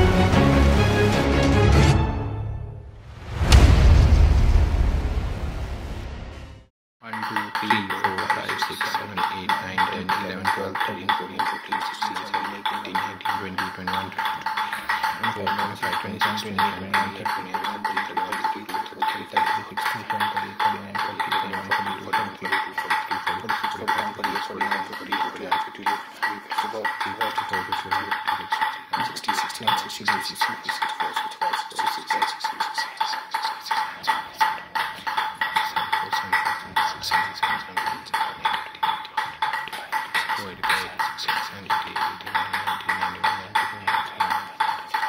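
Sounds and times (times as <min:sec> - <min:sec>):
ping pong ball bouncing on paddle: 0:07.0 - 0:45.0.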